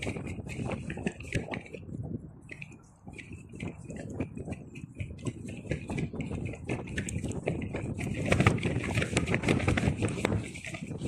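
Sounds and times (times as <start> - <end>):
fabric rustling in wind: 0.0 - 11.0
wind rumble on microphone: 0.0 - 11.0.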